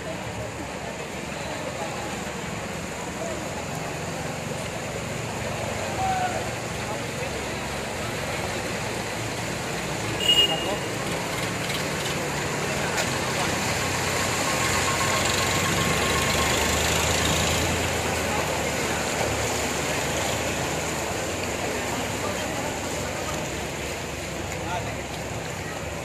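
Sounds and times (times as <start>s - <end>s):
motorcycles driving: 0.0s - 26.0s
water splashing: 0.0s - 26.0s.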